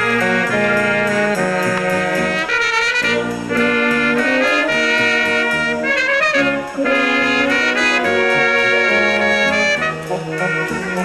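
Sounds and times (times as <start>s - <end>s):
wind band playing: 0.0s - 11.0s.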